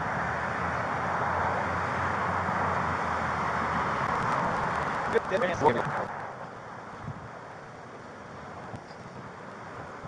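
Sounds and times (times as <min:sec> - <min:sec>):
traffic hum: 0:00.0 - 0:10.0
wind on microphone: 0:02.2 - 0:07.6.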